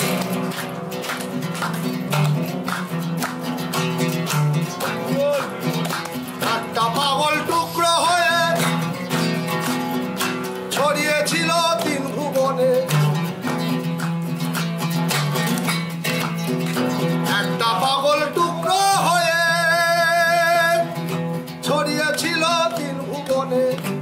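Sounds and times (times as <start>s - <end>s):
oud plucked melody: 0.0s - 24.0s.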